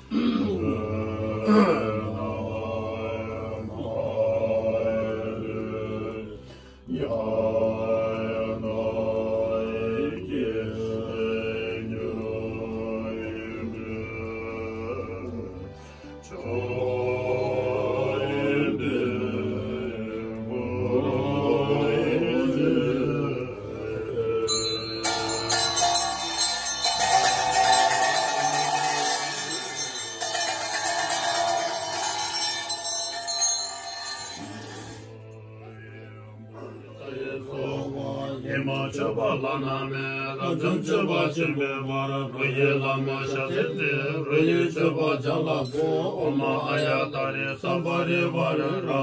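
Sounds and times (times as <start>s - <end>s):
voices chanting prayers: 0.0s - 49.0s.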